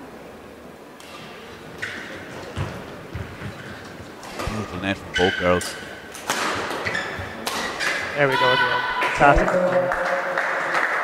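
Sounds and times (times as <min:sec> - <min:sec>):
racket hitting shuttlecock: 0:05.7 - 0:08.5.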